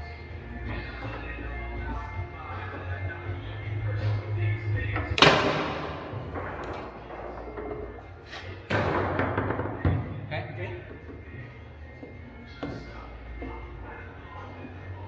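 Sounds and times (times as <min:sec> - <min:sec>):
knocks of ball and rods: 0:04.9 - 0:10.2
foosball ball cracking: 0:05.0 - 0:10.1.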